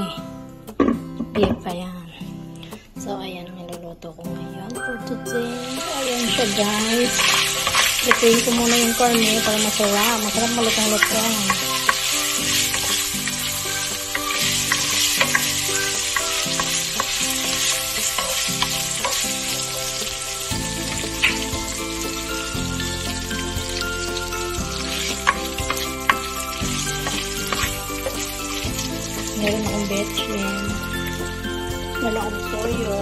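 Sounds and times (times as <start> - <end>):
meat sizzling in hot oil: 5.5 - 33.0
spatula scraping a wok: 5.8 - 29.9.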